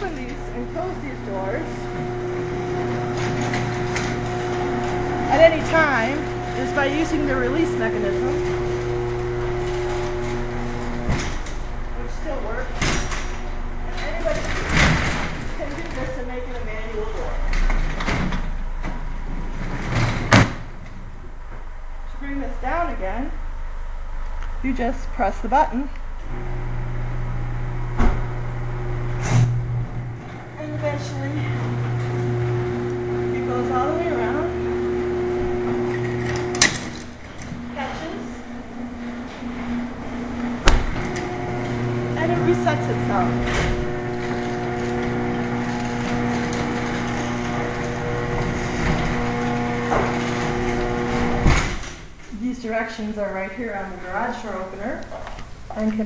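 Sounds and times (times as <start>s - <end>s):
garage door opener clunk: 0.0s - 21.7s, 26.0s - 52.4s
steady mechanical hum: 0.0s - 56.0s.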